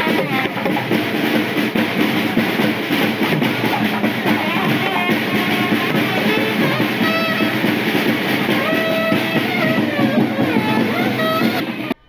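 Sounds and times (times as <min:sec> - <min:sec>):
conch shell blown: 0:00.0 - 0:12.0
music with guitar and drums: 0:00.0 - 0:12.0.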